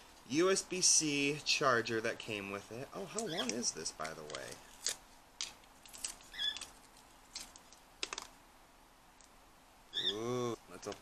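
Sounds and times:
bird chirp: 0:03.0 - 0:03.7, 0:06.2 - 0:06.7, 0:09.9 - 0:10.6
cable clicks and rustles: 0:03.2 - 0:08.4, 0:10.8 - 0:11.0.

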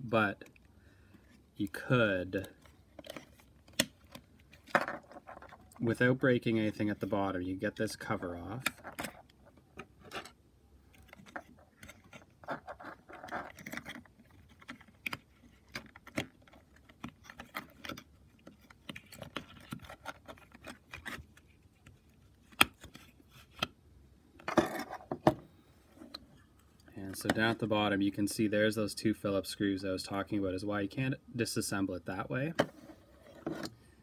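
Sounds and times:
plastic scraping: 0:01.2 - 0:07.2, 0:08.0 - 0:23.7, 0:32.6 - 0:33.9
plastic parts clicking: 0:08.6 - 0:23.7.

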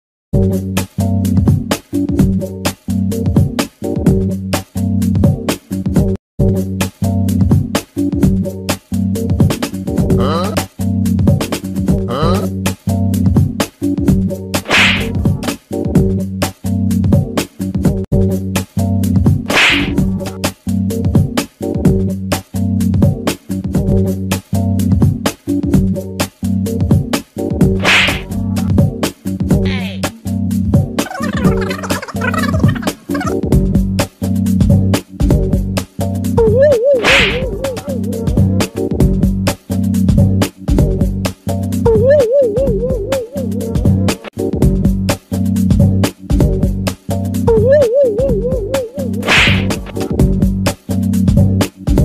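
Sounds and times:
background music with beat: 0:00.4 - 0:52.0
warbling comic tone: 0:10.2 - 0:10.6, 0:12.1 - 0:12.5, 0:14.7 - 0:15.3, 0:19.5 - 0:20.3, 0:29.7 - 0:30.0, 0:31.0 - 0:33.4, 0:36.5 - 0:38.3
hissing swoosh: 0:14.6 - 0:15.4, 0:19.5 - 0:20.3, 0:27.8 - 0:28.5, 0:37.0 - 0:37.6, 0:49.2 - 0:49.9
short swish: 0:14.6 - 0:15.5, 0:19.5 - 0:20.4, 0:27.8 - 0:28.6, 0:37.0 - 0:37.8, 0:49.2 - 0:50.0
music with steady beat: 0:49.2 - 0:52.0.

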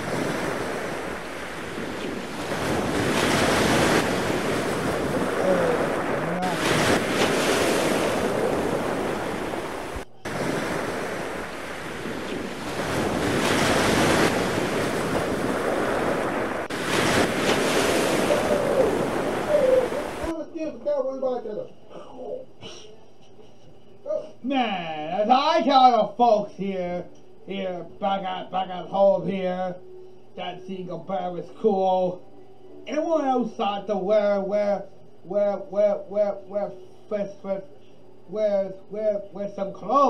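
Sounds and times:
ocean surf and breaking waves: 0:00.0 - 0:20.3
wind buffeting microphone: 0:00.0 - 0:20.3.

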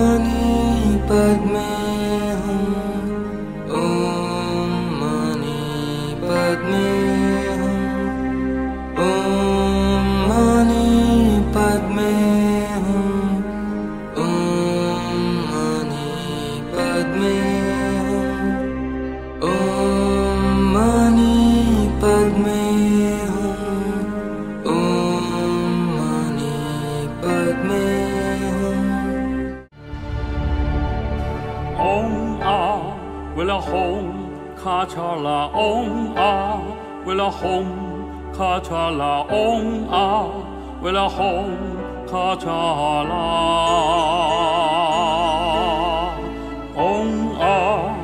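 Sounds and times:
mantra sung in long notes: 0:00.0 - 0:48.0
music with low drone: 0:00.0 - 0:48.0
slow melodic chant: 0:00.0 - 0:48.0.

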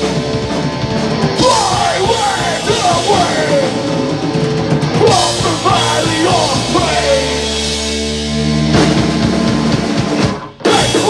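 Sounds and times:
punk band playing live: 0:00.0 - 0:11.0
drum hits: 0:08.7 - 0:11.0.

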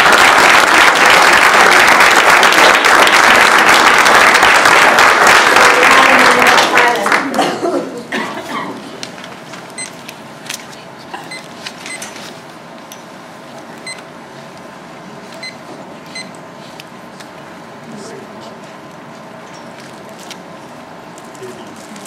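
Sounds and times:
audience applause: 0:00.0 - 0:07.4.

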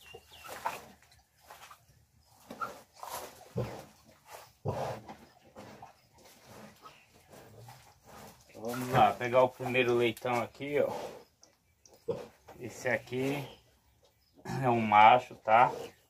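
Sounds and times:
pigs grunting and squeaking: 0:02.3 - 0:16.0.

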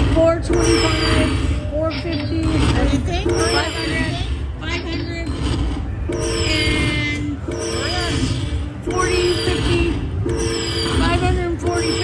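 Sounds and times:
electronic chime jingle: 0:06.1 - 0:12.0.

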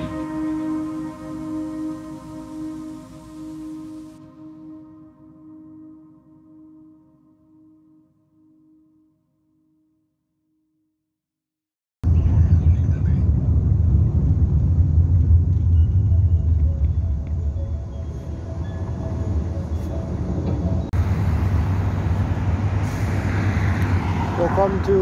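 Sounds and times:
road traffic rumble: 0:00.0 - 0:04.5, 0:12.0 - 0:25.0
traffic rushing past: 0:18.3 - 0:25.0.

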